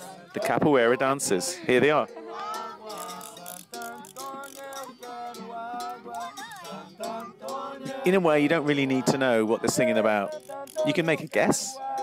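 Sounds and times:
voices singing: 0:00.0 - 0:12.0
percussion strikes: 0:02.3 - 0:12.0.

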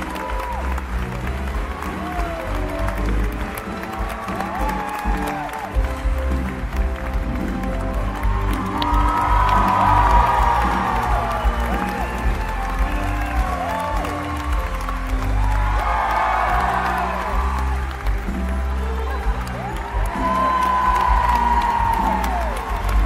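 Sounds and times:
audience applause: 0:00.0 - 0:23.0
audience cheering and whoops: 0:00.0 - 0:23.0
live band music: 0:00.0 - 0:23.0.

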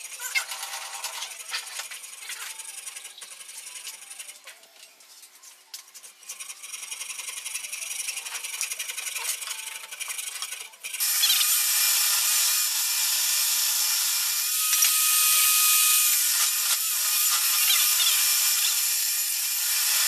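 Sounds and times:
saw cutting wood: 0:00.0 - 0:04.6, 0:06.3 - 0:20.0.

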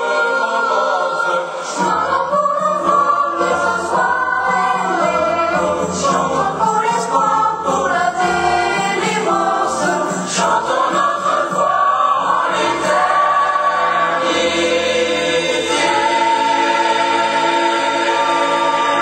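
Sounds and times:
boys' choir singing: 0:00.0 - 0:19.0.

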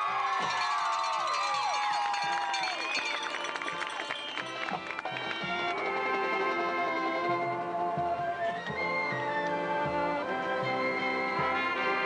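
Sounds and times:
brass chords with pitch slide: 0:09.6 - 0:12.0.

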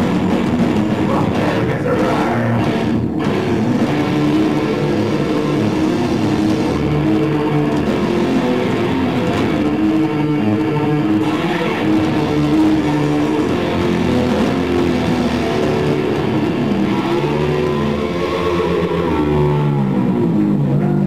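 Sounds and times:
distorted electric guitars: 0:00.0 - 0:21.0.

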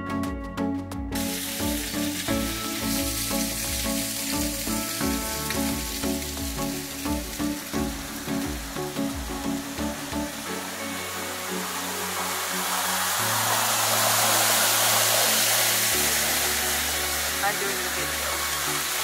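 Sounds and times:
chillout electronic music: 0:00.0 - 0:19.0
waterfall pouring: 0:01.2 - 0:19.0.

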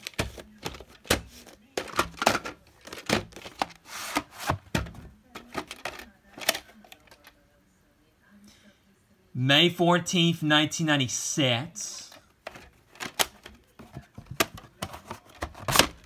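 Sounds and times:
plastic tape case clicks and knocks: 0:12.4 - 0:16.0.

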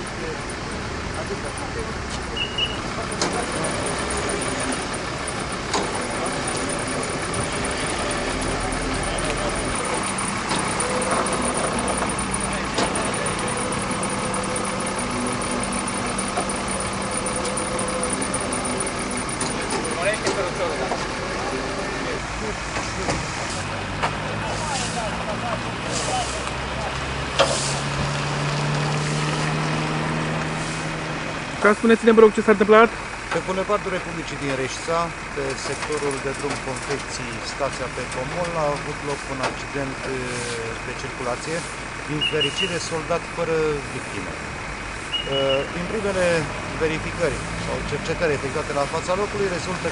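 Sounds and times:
truck engine running: 0:00.0 - 0:49.9
voices of people: 0:00.0 - 0:49.9.

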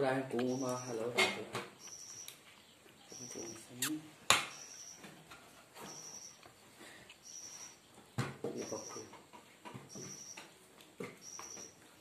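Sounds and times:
high thin chirp: 0:01.8 - 0:05.0, 0:05.8 - 0:06.5, 0:07.2 - 0:07.8, 0:09.9 - 0:10.5.

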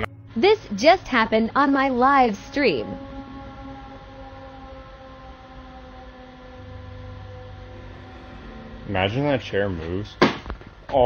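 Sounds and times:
deeper hum: 0:00.0 - 0:11.0
steady multi-tone hum: 0:00.0 - 0:11.0.

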